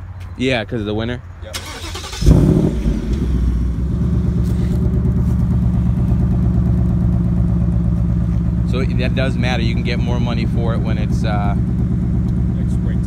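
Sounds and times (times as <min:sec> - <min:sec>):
car engine starting and idling: 0:01.5 - 0:13.0.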